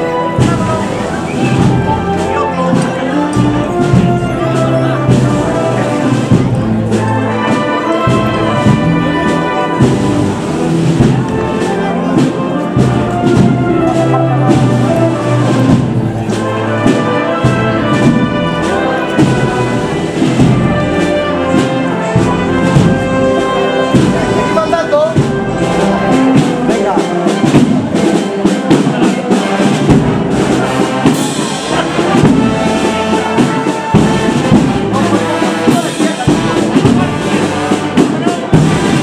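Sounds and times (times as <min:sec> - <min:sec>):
brass band playing a march: 0:00.0 - 0:39.0.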